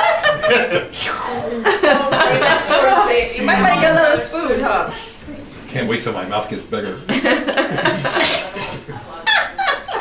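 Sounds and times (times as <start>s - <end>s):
people laughing: 0.0s - 4.2s, 7.1s - 10.0s.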